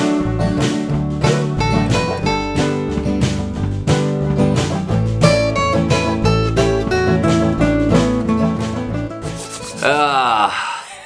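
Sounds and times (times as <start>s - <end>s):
acoustic guitar music: 0.0s - 10.4s.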